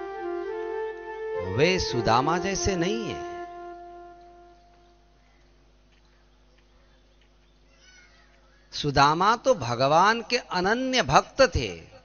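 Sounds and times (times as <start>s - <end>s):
faint steady hum: 0.0s - 12.0s
man speaking loudly: 1.4s - 3.4s, 8.8s - 12.0s.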